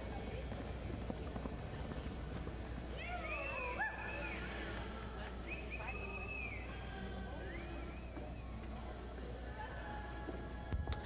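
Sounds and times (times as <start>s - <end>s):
hoofbeats on dirt: 0.0s - 5.9s
crowd murmur: 0.0s - 10.8s
spectators whistling: 3.2s - 4.7s, 5.4s - 8.6s.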